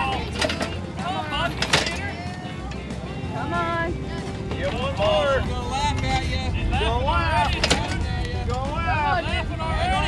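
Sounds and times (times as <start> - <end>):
steady low rumble: 2.4 - 10.0.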